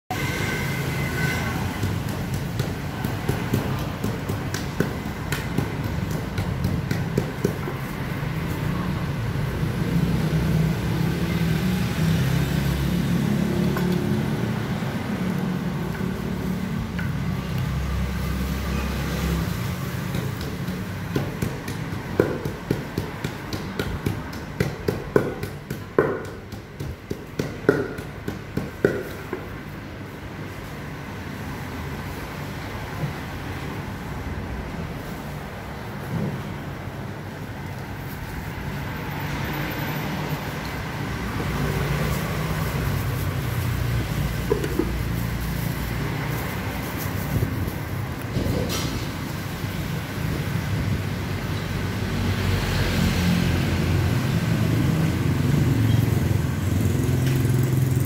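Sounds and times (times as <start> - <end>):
wooden pestle knocking in mortar: 1.6 - 7.9, 20.0 - 29.6, 44.4 - 45.0.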